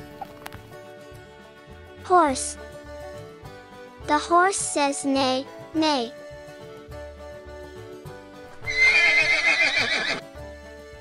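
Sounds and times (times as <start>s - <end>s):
light background music: 0.0s - 11.0s
horse whinnying: 8.6s - 10.2s.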